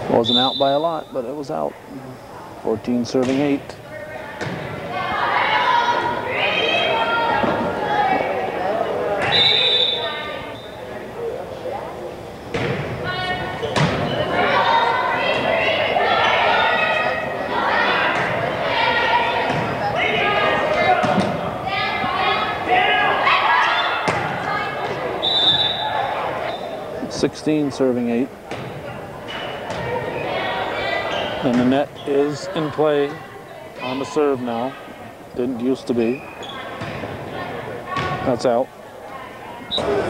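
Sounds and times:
referee's whistle blast: 0.2 - 1.2, 9.3 - 10.8, 25.2 - 26.8
people shouting and cheering: 4.8 - 11.0, 13.0 - 27.0.

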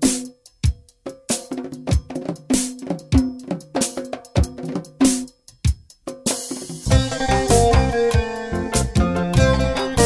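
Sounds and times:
drum kit beat: 0.0 - 10.0.

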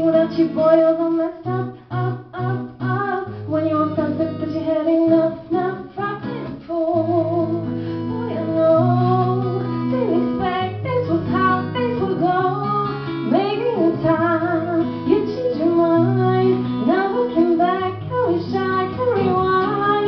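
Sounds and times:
acoustic guitar: 0.0 - 20.0
woman singing pop song: 0.0 - 20.0.

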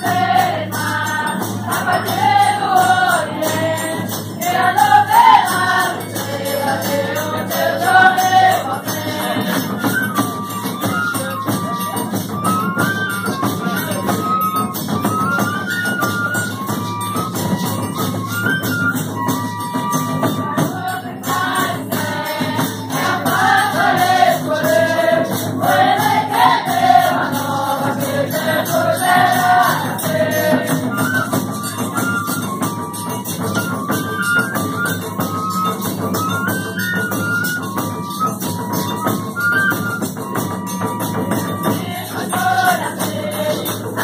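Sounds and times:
group singing in chorus: 0.0 - 10.1, 20.3 - 31.5, 41.4 - 44.0
drums: 0.0 - 44.0
jingling percussion: 0.0 - 44.0.

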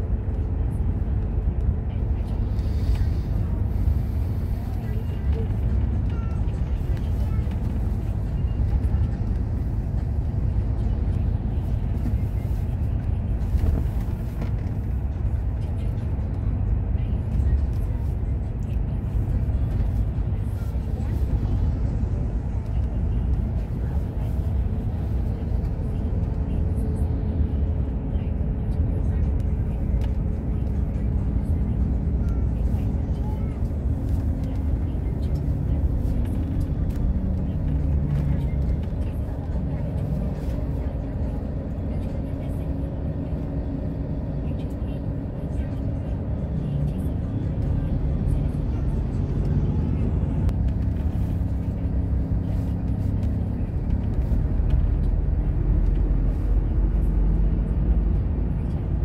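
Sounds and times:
faint voices: 0.0 - 59.0
vehicle engine and road noise: 0.0 - 59.0.

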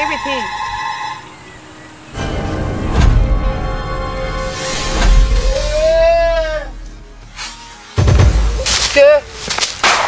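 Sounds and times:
person crying out: 5.6 - 6.8.

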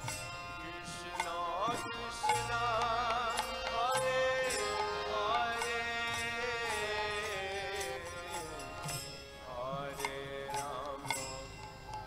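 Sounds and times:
devotional music with wavering melody: 0.0 - 12.0
sharp percussion strikes: 0.0 - 12.0.

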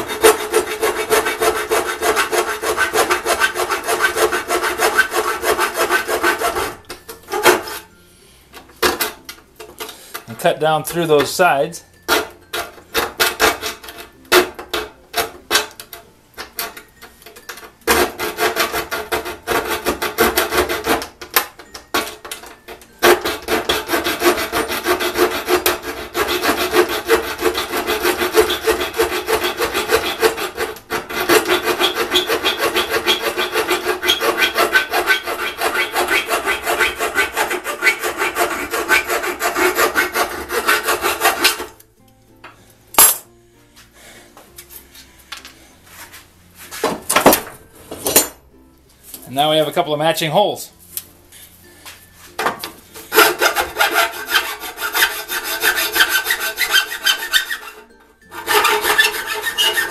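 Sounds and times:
saw cutting sheet steel: 0.0 - 7.9, 17.9 - 21.2, 22.6 - 41.8, 53.0 - 59.9.

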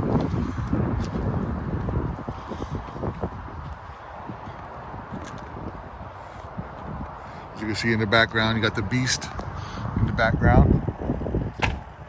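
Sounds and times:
footsteps on road: 0.0 - 9.6
wind rumbling on microphone: 0.0 - 12.0.

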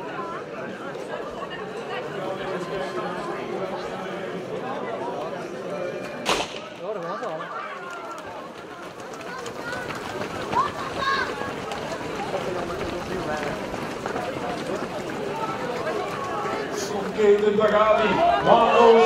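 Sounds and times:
crowd talking: 0.0 - 19.0
starting pistol shot: 6.2 - 6.8.

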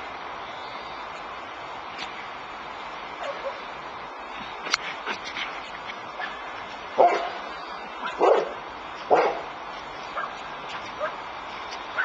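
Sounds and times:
dog barking: 3.2 - 3.6, 7.0 - 7.4, 8.0 - 9.5.

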